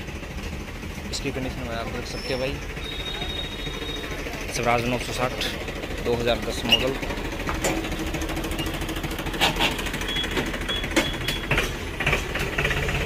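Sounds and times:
diesel engine idling: 0:00.0 - 0:13.0.

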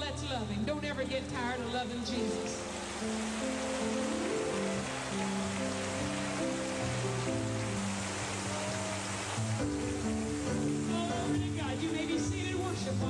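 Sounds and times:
held keyboard chords: 0:02.1 - 0:13.0
audience clapping and praising: 0:02.5 - 0:12.9.

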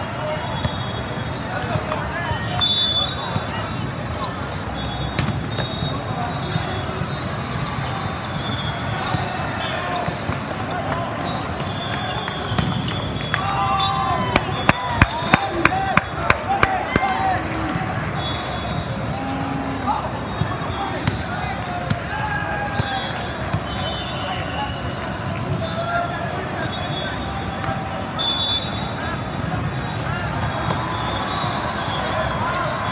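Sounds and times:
din of many voices: 0:13.4 - 0:32.9.

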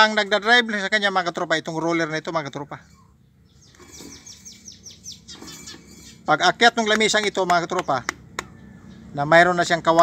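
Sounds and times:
small bird singing faintly: 0:01.8 - 0:09.7.

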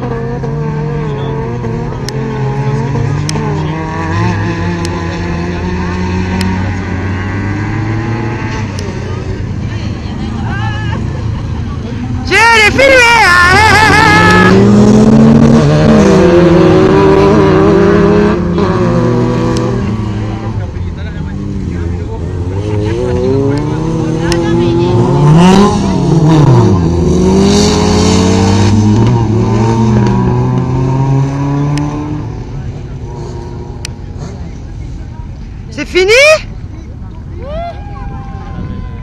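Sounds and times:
car passing: 0:00.0 - 0:39.0
race car engines revving: 0:00.0 - 0:39.0.

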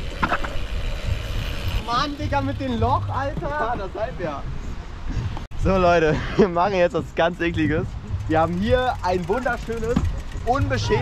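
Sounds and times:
bicycle tyres rolling: 0:00.0 - 0:04.7, 0:07.2 - 0:11.0.

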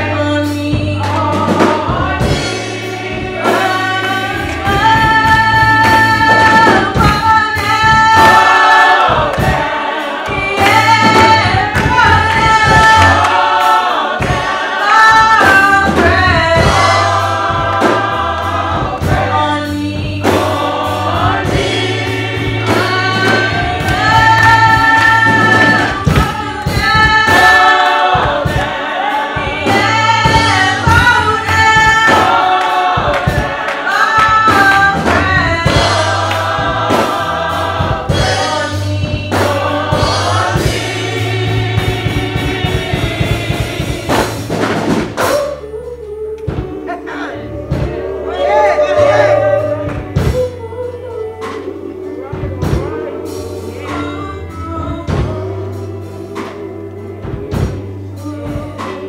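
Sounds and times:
choir and congregation singing gospel: 0:00.0 - 0:59.0
steady bass accompaniment: 0:00.0 - 0:59.0
percussive hits: 0:01.0 - 0:45.4.

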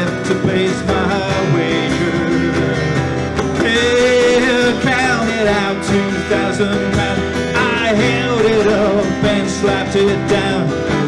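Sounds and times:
cajon: 0:00.0 - 0:11.0
man singing: 0:00.0 - 0:11.0
mandolin: 0:00.0 - 0:11.0
strummed acoustic guitars: 0:00.0 - 0:11.0.

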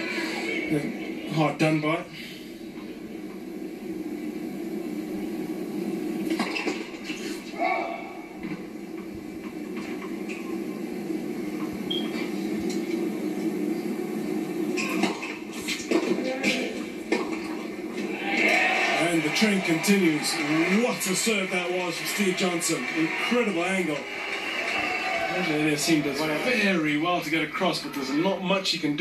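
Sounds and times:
crowd and arena hum: 0:00.0 - 0:29.0.

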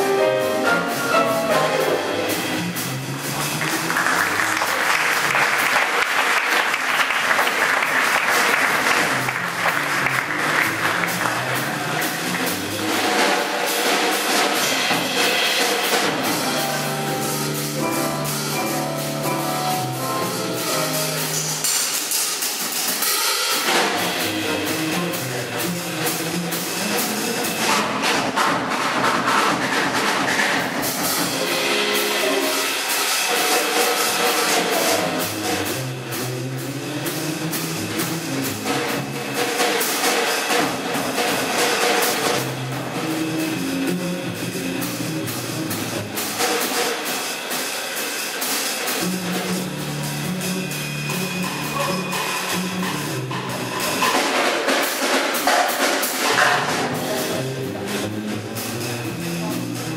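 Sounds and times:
double bass: 0:00.0 - 0:21.7, 0:23.7 - 0:28.2, 0:30.8 - 0:46.7, 0:48.8 - 0:54.2, 0:56.3 - 0:59.9
drum kit cymbals and drums: 0:00.0 - 0:59.9
stage piano: 0:00.0 - 0:59.9.

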